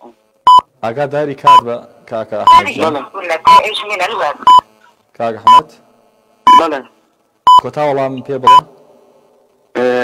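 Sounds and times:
person talking: 2.5 - 4.5.

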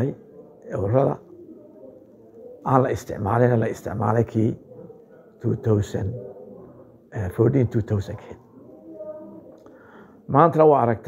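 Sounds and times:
man speaking: 0.0 - 1.3, 2.6 - 4.7, 5.4 - 6.2, 7.1 - 8.4, 10.3 - 11.0.

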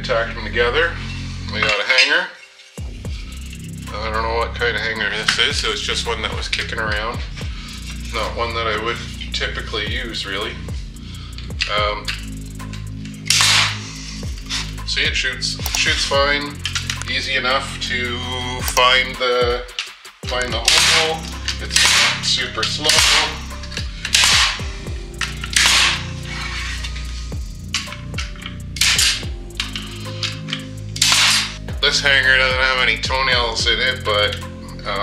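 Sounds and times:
background music: 0.0 - 35.0
air hiss: 7.3 - 9.6, 17.9 - 28.2
nail gun firing: 13.3 - 13.9, 20.6 - 22.3, 22.9 - 23.4, 24.1 - 24.7, 25.5 - 26.1, 28.8 - 29.2, 31.0 - 31.6.

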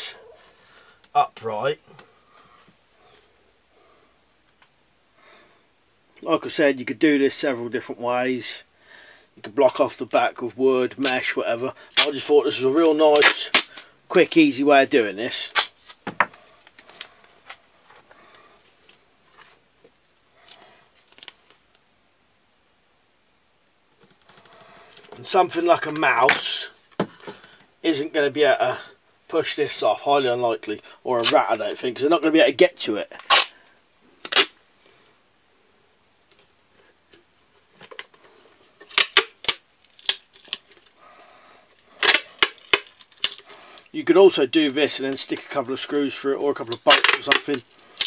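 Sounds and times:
duct tape tearing off roll: 11.9 - 12.3, 12.9 - 13.9, 15.3 - 17.6, 31.2 - 31.5, 33.2 - 33.6, 34.2 - 34.6, 38.8 - 40.9, 41.7 - 43.5, 46.6 - 48.0
duct tape crinkling and clicking: 11.9 - 13.9, 15.3 - 21.8, 23.9 - 27.7, 31.2 - 33.6, 34.2 - 34.6, 36.2 - 44.0, 44.6 - 48.0
tape rustle: 11.9 - 13.9, 15.2 - 21.8, 23.9 - 27.7, 31.1 - 35.0, 36.2 - 48.0.

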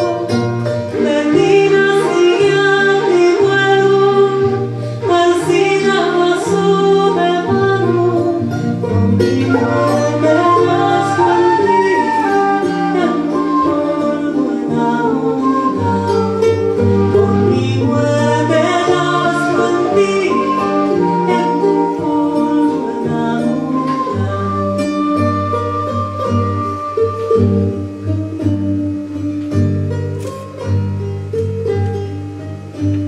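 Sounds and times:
charango: 0.0 - 33.0
guitar bass line: 0.0 - 33.0
woman singing: 0.9 - 27.8.

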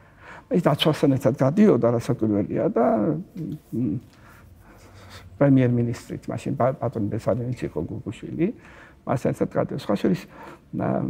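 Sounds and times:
man speaking: 0.5 - 4.2, 5.0 - 11.0.

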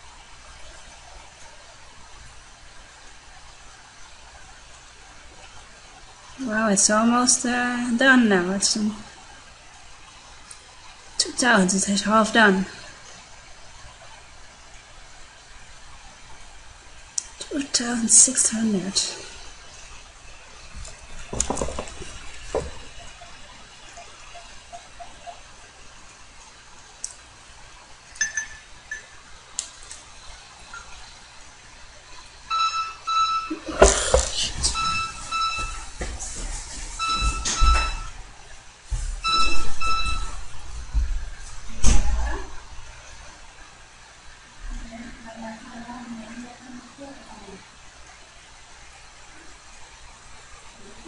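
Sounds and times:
sharp knocks and thumps: 21.2 - 23.0
high electronic beeps: 32.5 - 33.7, 34.7 - 35.9, 37.0 - 38.1, 39.2 - 40.4.

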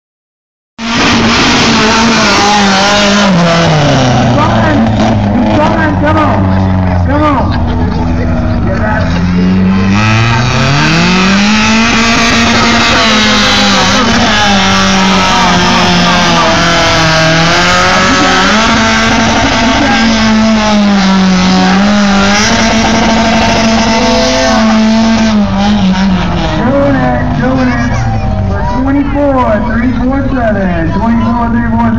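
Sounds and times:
truck engine at high revs: 0.8 - 31.9.

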